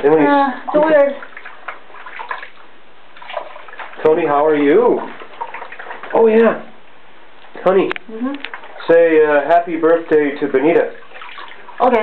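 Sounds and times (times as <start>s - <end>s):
hair washing water sounds: 0.0s - 6.9s, 7.6s - 12.0s.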